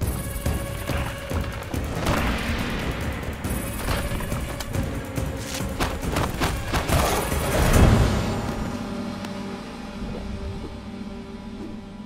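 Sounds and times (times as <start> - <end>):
low droning film score: 0.0 - 12.0.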